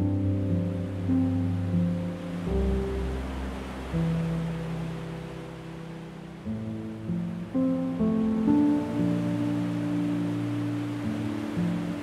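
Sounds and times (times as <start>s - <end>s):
slow gentle piano music: 0.0s - 12.0s
ocean waves breaking: 0.4s - 12.0s.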